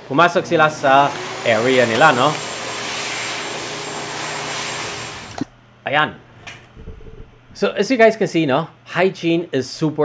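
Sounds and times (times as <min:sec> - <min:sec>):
electric blower air rush: 0:00.0 - 0:05.5.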